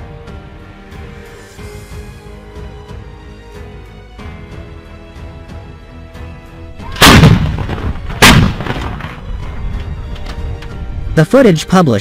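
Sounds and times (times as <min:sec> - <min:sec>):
artillery gun blasts: 0:06.9 - 0:09.3.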